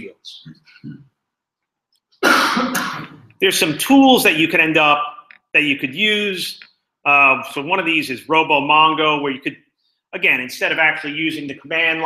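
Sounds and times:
man coughing: 2.2 - 3.4.

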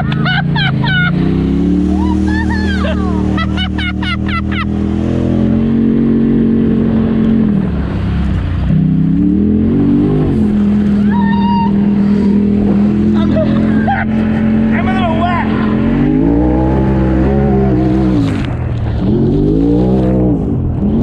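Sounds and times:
utility vehicle engine revving: 0.0 - 21.0
mud and water spraying: 0.4 - 7.1.

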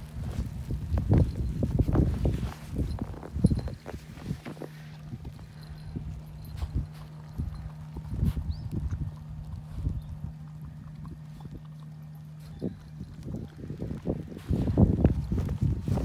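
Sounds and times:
puppy crunching snow: 0.0 - 16.0
steady low hum: 0.0 - 16.0.

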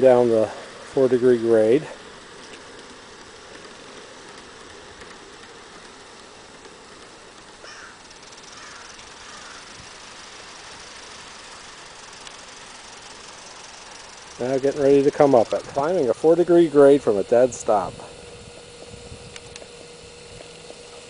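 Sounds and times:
model train rolling: 0.0 - 21.0.

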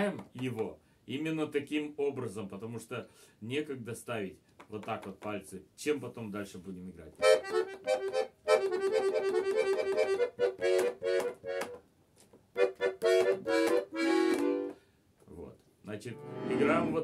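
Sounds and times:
button accordion playing chords: 7.2 - 11.8, 12.5 - 14.8, 16.2 - 17.0.

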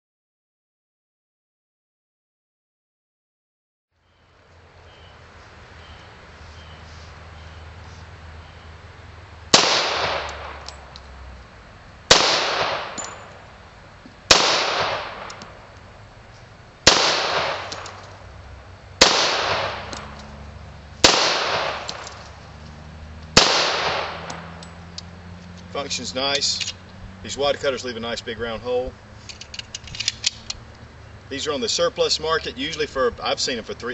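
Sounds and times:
pistol shots with echo: 9.5 - 10.6, 12.1 - 13.3, 14.3 - 15.6, 16.8 - 18.0, 19.0 - 20.0, 21.0 - 22.2, 23.4 - 24.5.

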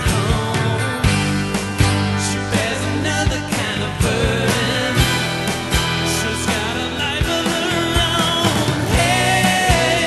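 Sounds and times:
folk-rock band playing: 0.0 - 10.0.

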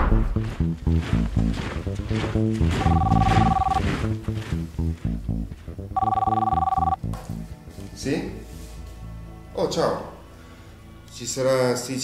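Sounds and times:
background music with low beat: 0.0 - 9.3
desk telephone ringing: 2.8 - 3.8, 6.0 - 7.0.

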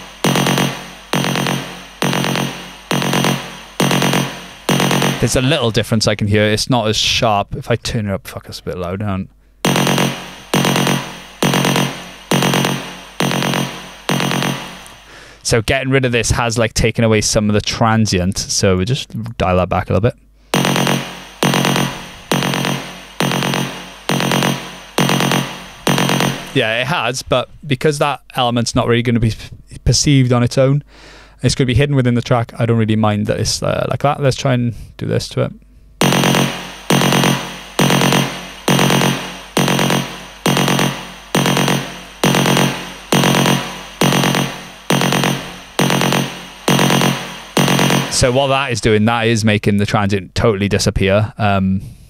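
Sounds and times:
distorted electronic hit: 0.0 - 5.6
electronic percussive hit with reverb: 0.0 - 5.6, 9.6 - 15.1, 20.6 - 26.6, 36.0 - 48.6.

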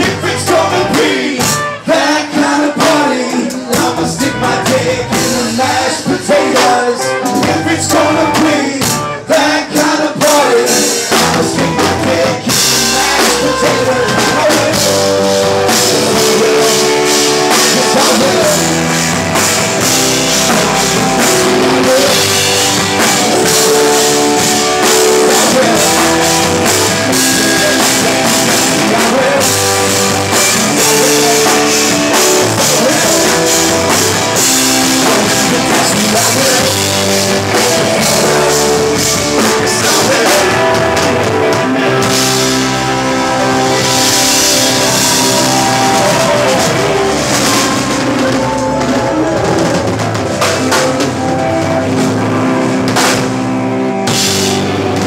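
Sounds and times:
person singing: 0.0 - 52.3
live rock band: 0.0 - 55.0.

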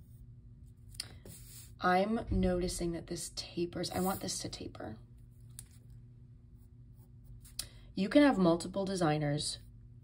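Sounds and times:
pencil scratching on paper: 0.0 - 1.8, 3.8 - 4.6.

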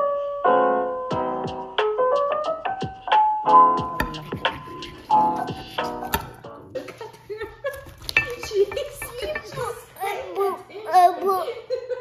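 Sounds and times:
piano music: 0.0 - 6.8
toddler babbling: 10.0 - 11.6.

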